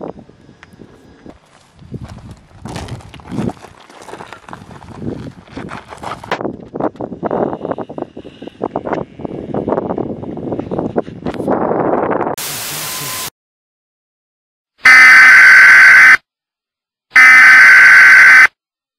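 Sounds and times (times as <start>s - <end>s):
static hiss: 12.4s - 13.3s
harsh electronic buzzer: 14.8s - 16.2s, 17.2s - 18.5s.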